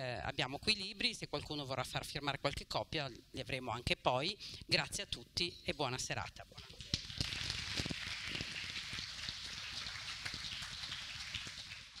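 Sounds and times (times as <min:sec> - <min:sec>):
audience applauding: 0:06.8 - 0:12.0.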